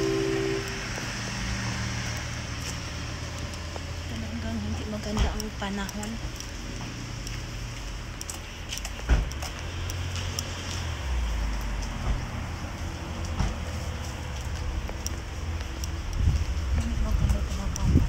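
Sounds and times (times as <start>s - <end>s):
wind buffeting microphone: 16.0s - 18.0s.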